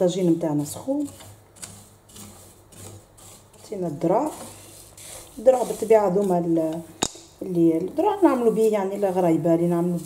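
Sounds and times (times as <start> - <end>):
spoon stirring seeds in clay pot: 0.0 - 10.0.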